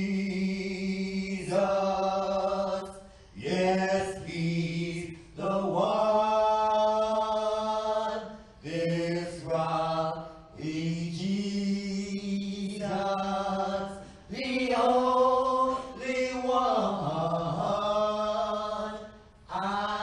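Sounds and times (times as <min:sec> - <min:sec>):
singer breathing: 0:02.9 - 0:03.4, 0:13.9 - 0:14.3.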